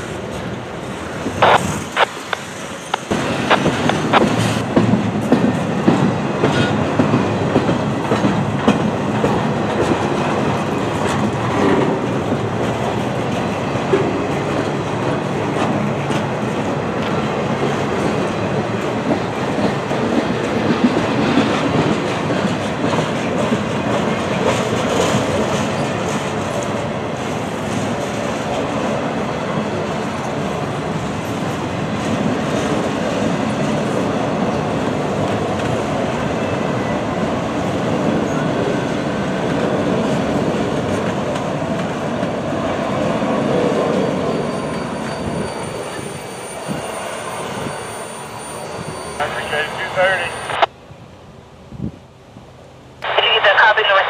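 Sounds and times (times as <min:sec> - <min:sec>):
train wheels rumbling on rail: 0:00.0 - 0:53.0
wheels clacking over rail joints: 0:02.2 - 0:26.8.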